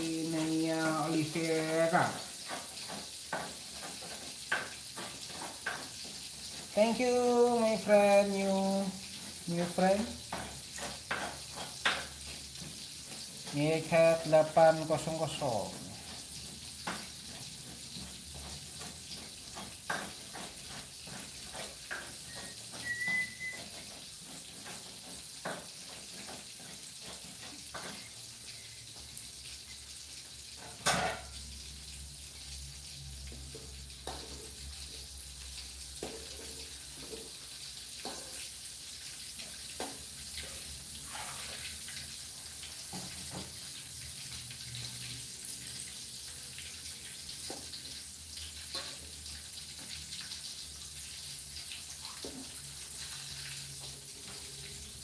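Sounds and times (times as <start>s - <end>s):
food sizzling in oil: 0.0s - 55.0s
metal spatula scraping wok: 36.0s - 42.0s.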